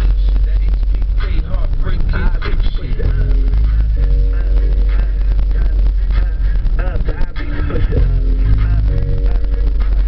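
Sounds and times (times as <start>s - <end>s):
car engine and road noise: 0.0s - 10.0s
music: 0.0s - 10.0s.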